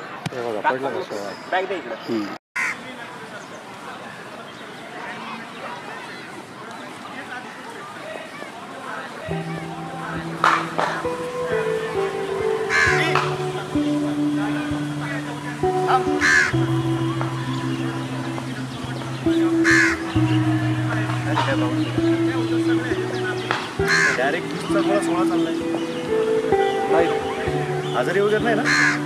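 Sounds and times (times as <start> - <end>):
crow cawing: 2.6 - 2.8, 12.6 - 13.5, 16.0 - 16.6, 19.6 - 20.1, 23.9 - 24.2, 28.6 - 29.0
slow held music chords: 9.3 - 29.0.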